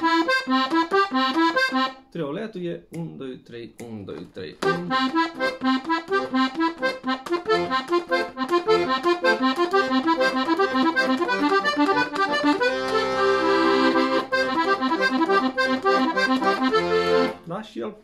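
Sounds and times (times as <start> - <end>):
accordion playing arpeggios: 0.0 - 2.0, 4.6 - 17.5.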